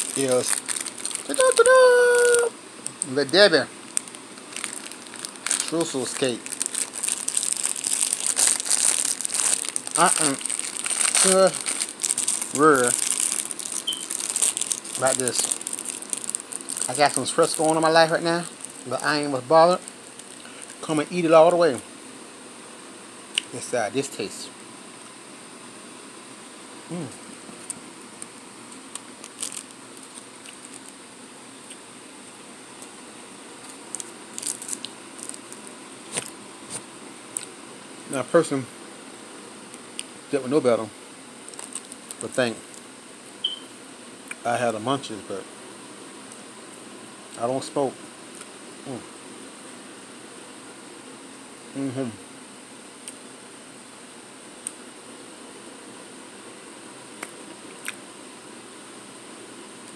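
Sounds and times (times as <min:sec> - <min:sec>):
plastic wrapper crinkling: 0:00.0 - 0:21.2, 0:27.6 - 0:31.0, 0:33.6 - 0:36.4, 0:41.4 - 0:42.9.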